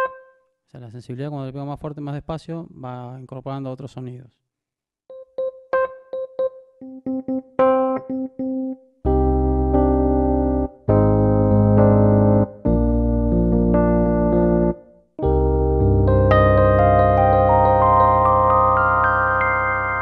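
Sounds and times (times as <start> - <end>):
electric piano notes and chords: 0.0 - 0.3, 5.1 - 20.0.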